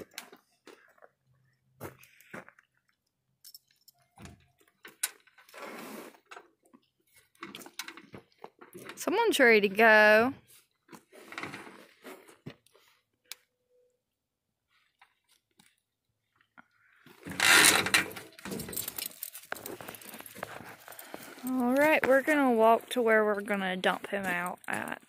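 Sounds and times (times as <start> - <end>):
handling rustling and clicks: 15.0 - 22.3
person speaking: 21.4 - 25.0.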